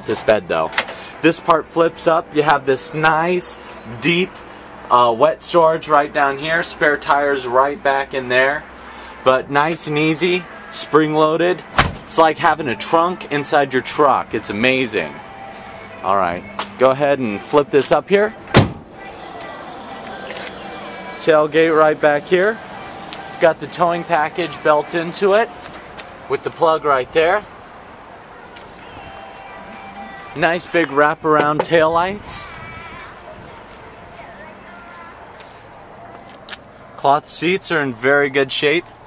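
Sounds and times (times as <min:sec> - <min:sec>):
outdoor background noise: 0:00.0 - 0:39.0.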